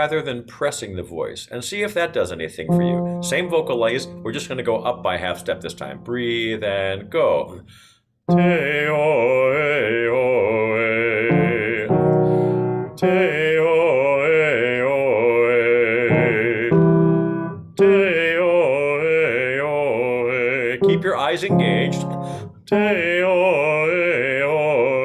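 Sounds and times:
man singing vocal warm-up: 0:02.2 - 0:25.0
keyboard chords: 0:02.7 - 0:07.4, 0:08.3 - 0:09.8, 0:11.0 - 0:24.7.

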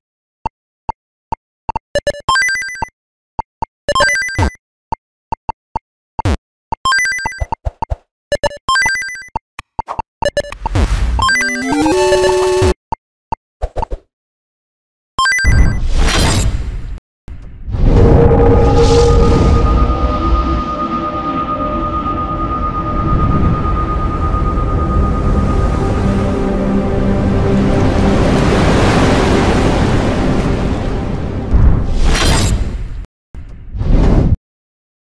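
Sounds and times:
loud rushing noise: 0:17.7 - 0:32.0
low music bed: 0:18.0 - 0:28.6.

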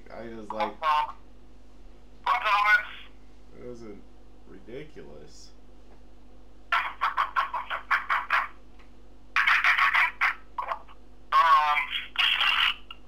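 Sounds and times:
muffled speech through small speaker: 0:00.0 - 0:01.3, 0:02.2 - 0:05.6, 0:06.7 - 0:08.6, 0:09.3 - 0:13.0
steady low hum: 0:00.0 - 0:13.0.

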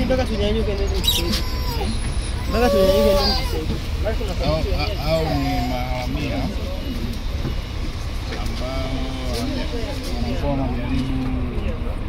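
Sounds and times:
bus engine rumble: 0:00.0 - 0:12.0.

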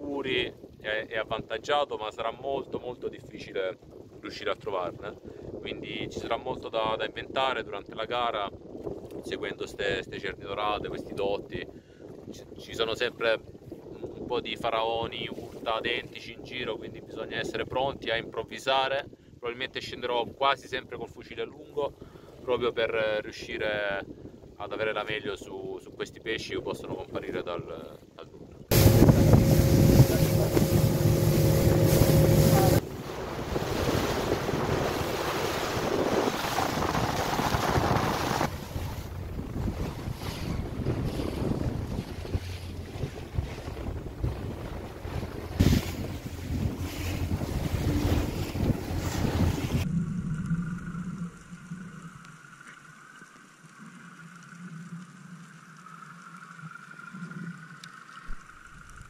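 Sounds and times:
wind on microphone: 0:05.0 - 0:06.6, 0:08.4 - 0:12.7, 0:13.4 - 0:14.3, 0:28.4 - 0:52.2
muffled underwater hum: 0:28.7 - 0:35.5, 0:38.5 - 0:59.0
rushing water: 0:28.7 - 0:49.9
outboard motor running: 0:28.7 - 0:51.4.

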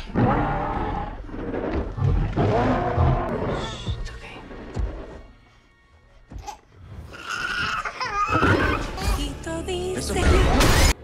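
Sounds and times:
dinosaur roaring: 0:00.0 - 0:03.6.

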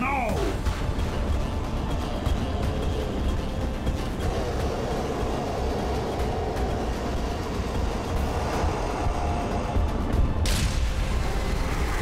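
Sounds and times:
heavy rumbling energy roar: 0:00.1 - 0:12.0.

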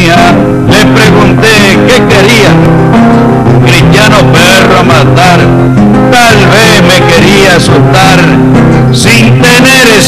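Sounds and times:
acoustic guitar music: 0:00.0 - 0:10.0.

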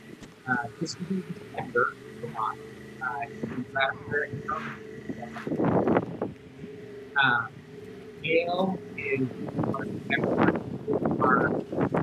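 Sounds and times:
people's voices: 0:00.0 - 0:06.0, 0:07.1 - 0:07.5, 0:08.2 - 0:12.0
rush of noise: 0:00.0 - 0:12.0
truck engine running: 0:00.0 - 0:12.0.

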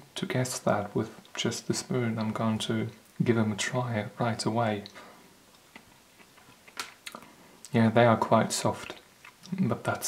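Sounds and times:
chewing mouth sounds: 0:05.5 - 0:07.3, 0:08.8 - 0:09.7.

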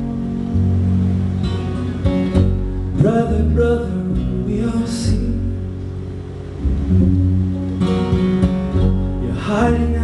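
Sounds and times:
acoustic guitar strummed: 0:00.0 - 0:10.0
upright bass playing: 0:00.0 - 0:10.0.

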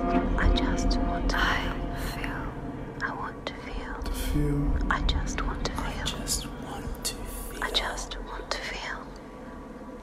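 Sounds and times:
low steady hum: 0:00.0 - 0:10.0
overlapping whispering voices: 0:00.4 - 0:09.2.

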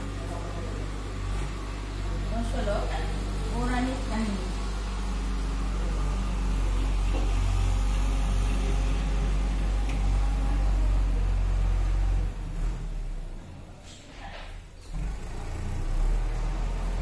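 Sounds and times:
low mechanical hum and rumble: 0:00.0 - 0:17.0.

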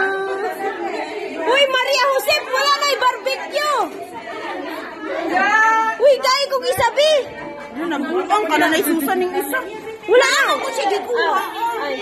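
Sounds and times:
women chattering: 0:00.0 - 0:12.0.

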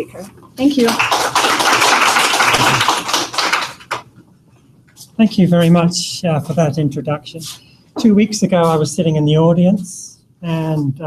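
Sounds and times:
audience applauding: 0:00.6 - 0:04.0.

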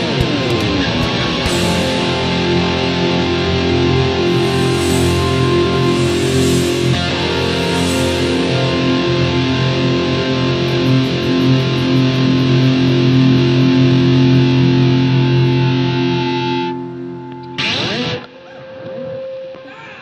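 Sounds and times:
distorted electric guitar sustained notes: 0:00.0 - 0:19.8
harsh noise burst: 0:01.1 - 0:13.8.

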